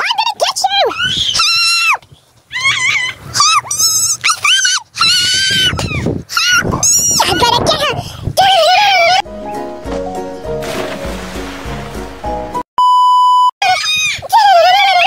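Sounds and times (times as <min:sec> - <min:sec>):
young children squealing and crying: 0:00.9 - 0:07.8, 0:13.6 - 0:15.0.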